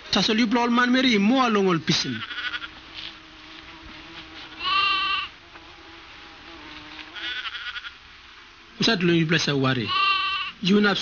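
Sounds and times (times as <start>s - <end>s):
insect-like hiss: 1.6s - 11.0s
high-pitched animal call: 2.0s - 3.3s, 4.5s - 5.4s, 7.0s - 8.0s, 9.8s - 10.6s.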